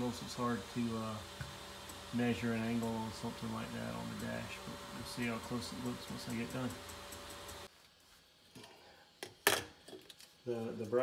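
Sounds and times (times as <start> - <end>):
printer hissing and whining: 0.0 - 7.7.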